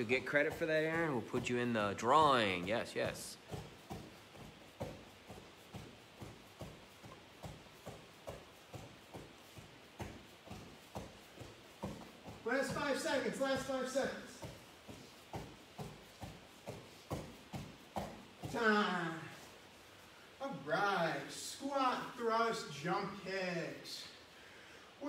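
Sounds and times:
man talking: 0.0 - 3.5, 12.4 - 14.6, 18.4 - 19.6, 20.4 - 24.2
feet padding on a mat: 0.0 - 20.4.

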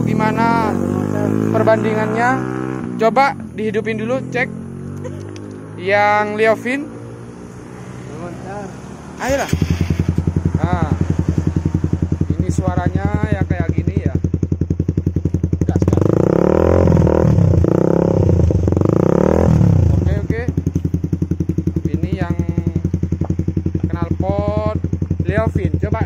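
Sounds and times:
motorcycle engine idling and revving: 0.0 - 26.0.

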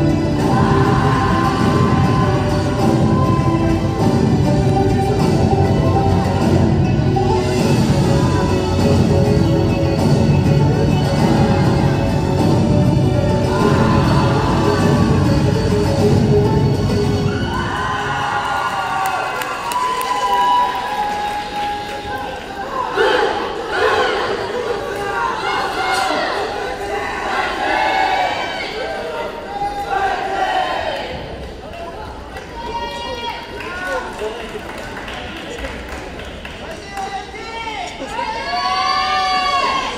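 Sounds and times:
indistinct voices talking: 0.0 - 17.7
loud performance music: 0.0 - 19.7
crowd cheering and shouting: 0.0 - 34.1, 36.8 - 39.9.

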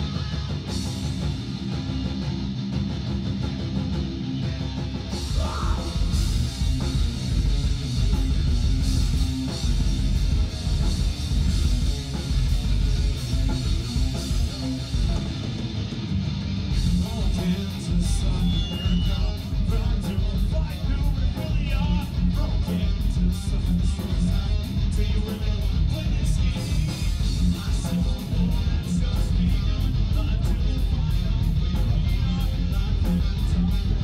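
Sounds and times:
live rock band: 0.0 - 34.0.

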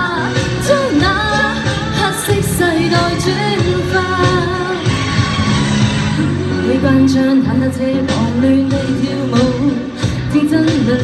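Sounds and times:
woman singing into microphone: 0.0 - 5.3, 6.2 - 11.0
backing music: 0.0 - 11.0.

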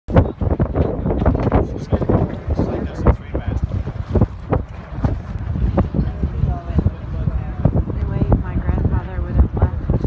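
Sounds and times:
boat rumbling through water: 0.1 - 10.0
wind buffeting microphone: 0.1 - 10.0.

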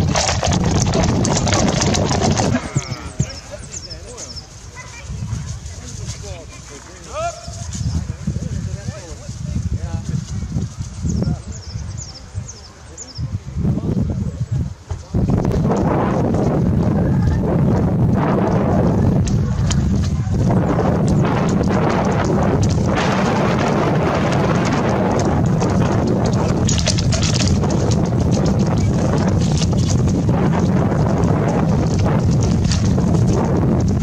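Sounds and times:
hooves thudding on turf: 0.0 - 11.6, 14.8 - 34.0
wind rumble on microphone: 0.0 - 34.0.

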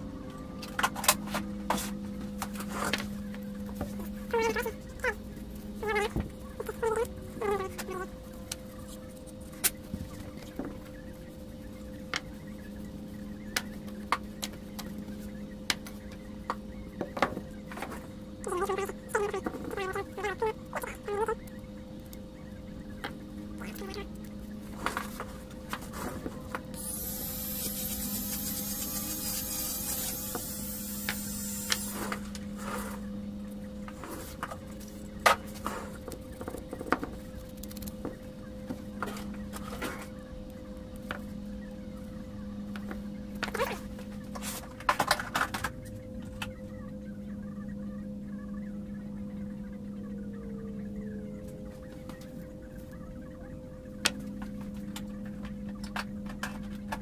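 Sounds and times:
low hum: 0.0 - 57.0.

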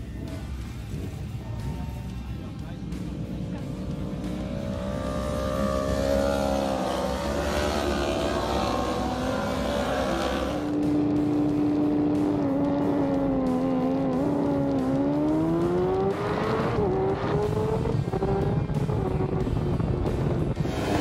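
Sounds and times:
racing motorcycle engine revving: 0.0 - 21.0.

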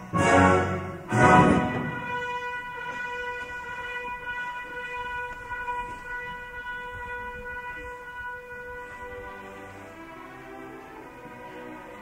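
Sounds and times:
orchestra holding long note: 0.0 - 12.0.

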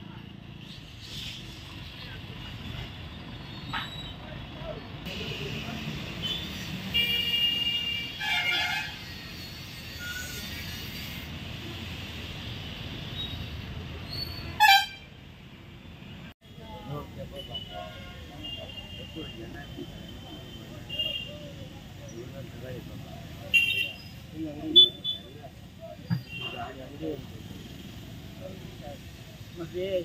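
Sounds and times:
car horns tooting: 5.1 - 9.2, 14.4 - 15.1, 26.1 - 26.9.

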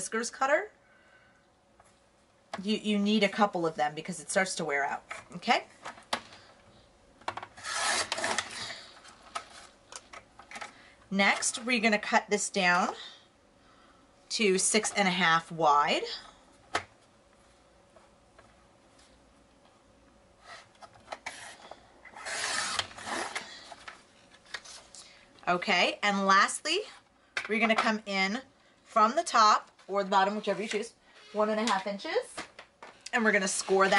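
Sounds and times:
paper trimmer blade scraping: 7.6 - 8.6, 22.1 - 23.4.

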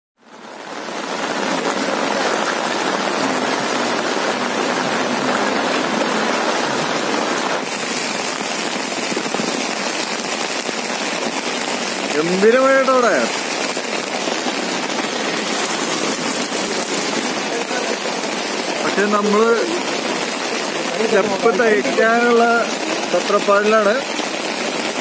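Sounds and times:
heavy rain on a flooded road: 0.2 - 25.0.

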